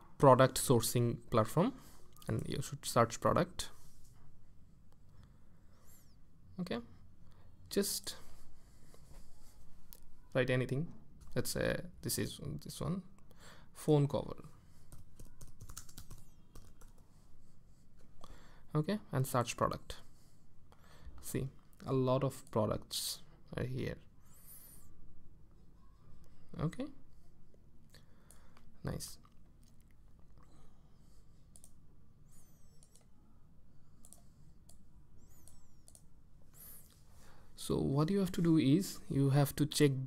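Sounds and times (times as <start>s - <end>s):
computer mouse clicks: 31.5s - 31.8s, 32.7s - 33.1s, 34.0s - 36.1s.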